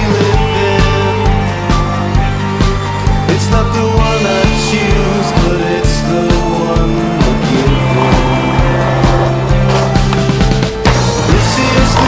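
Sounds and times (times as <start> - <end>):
music soundtrack: 0.0 - 12.0.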